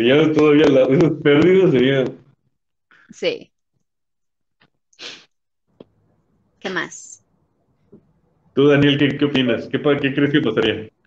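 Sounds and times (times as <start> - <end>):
sharp burst of breath: 5.0 - 5.3.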